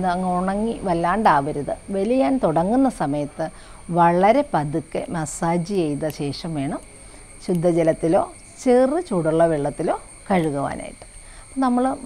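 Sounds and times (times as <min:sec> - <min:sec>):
woman speaking: 0:00.0 - 0:06.8, 0:07.4 - 0:12.0
faint high-pitched whine: 0:00.0 - 0:12.0.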